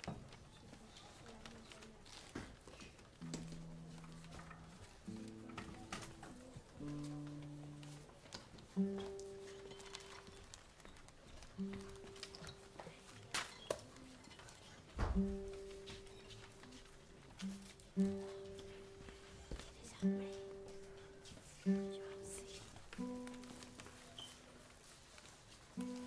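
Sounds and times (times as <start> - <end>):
sharp knocks and handling noises: 2.1 - 26.0.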